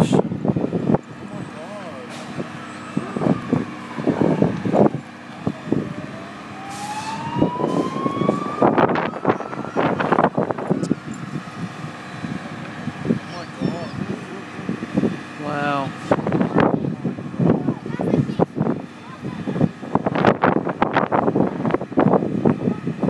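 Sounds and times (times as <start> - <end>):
steady engine hum: 0.0 - 23.0
emergency siren wailing: 0.1 - 17.6
people's voices: 1.0 - 6.2, 6.9 - 20.3.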